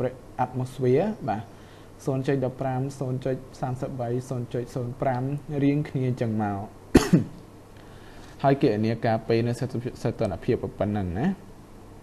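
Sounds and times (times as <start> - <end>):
short cough: 6.9 - 7.4.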